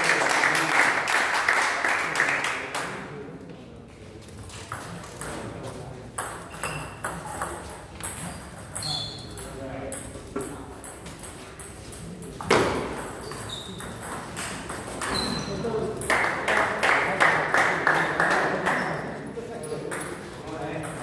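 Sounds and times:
table tennis balls bouncing: 4.6s - 16.8s, 18.0s - 21.0s.

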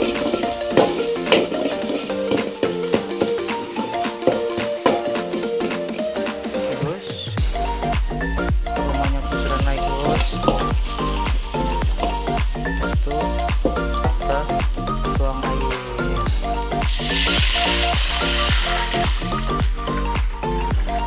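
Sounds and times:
water hitting hot oil: 0.0s - 5.4s, 9.0s - 12.8s, 16.8s - 21.0s
spice paste sizzling in hot oil: 0.0s - 6.5s, 9.3s - 12.8s, 16.8s - 20.1s
background music with steady beat: 0.0s - 21.0s.

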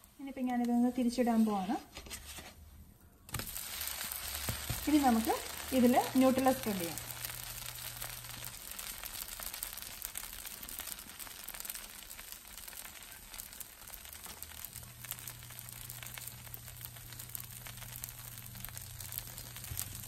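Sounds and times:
batter sizzling on a hot pan: 3.3s - 20.0s.

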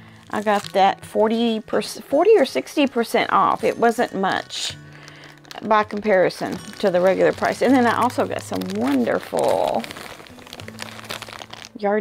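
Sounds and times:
plastic bag crinkling: 0.0s - 12.0s
person speaking: 5.5s - 10.1s.

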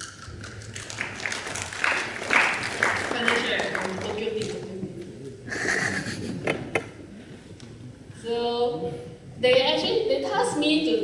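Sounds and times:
audience clapping: 0.0s - 4.7s.

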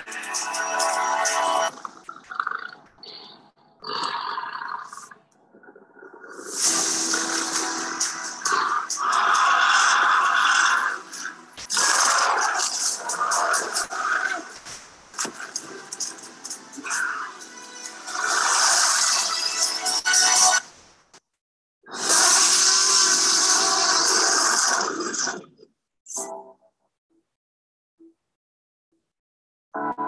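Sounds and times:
film music: 0.0s - 3.3s, 6.6s - 13.8s, 15.1s - 20.6s
dinosaur roars and growls: 8.4s - 14.5s.

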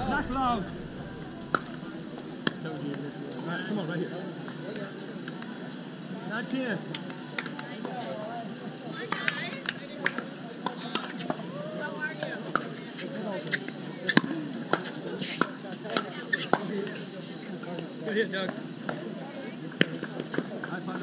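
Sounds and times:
murmur of voices: 0.0s - 21.0s.

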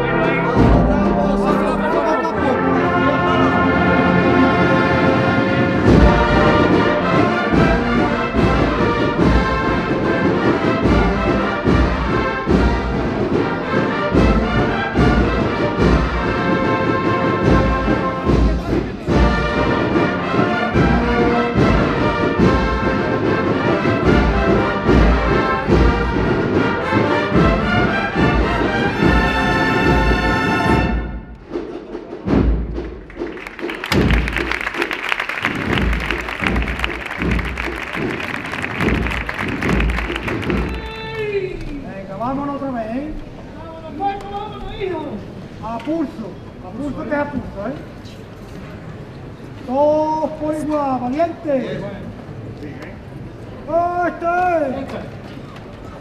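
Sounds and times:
brass band playing a march: 0.0s - 40.9s
crowd applause: 33.0s - 41.4s
bass drum beat: 33.9s - 40.8s.

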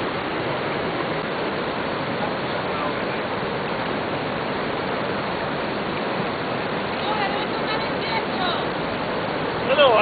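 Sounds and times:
running water rushing: 0.0s - 10.0s.

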